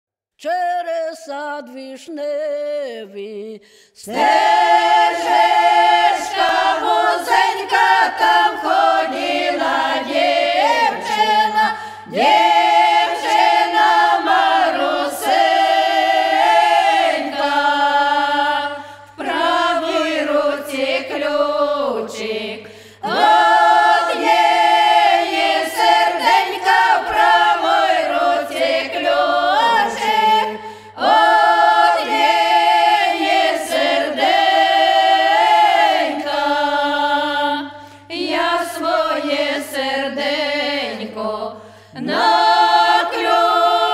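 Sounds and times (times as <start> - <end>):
women singing a cappella: 2.0 - 43.9.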